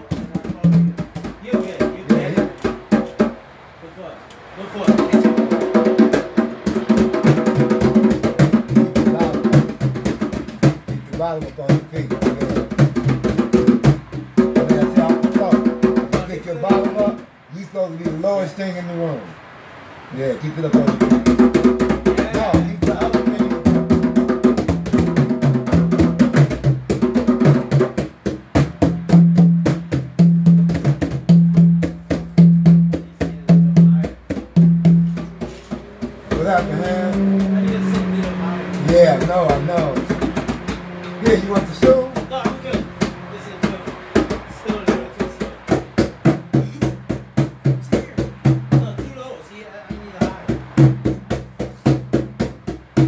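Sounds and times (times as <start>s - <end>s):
hand strokes on djembe: 20.8s - 49.1s
low pitched drum note: 28.6s - 49.0s.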